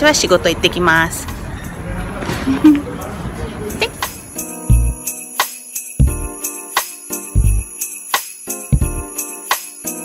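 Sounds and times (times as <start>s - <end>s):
traffic rushing: 0.0s - 4.4s.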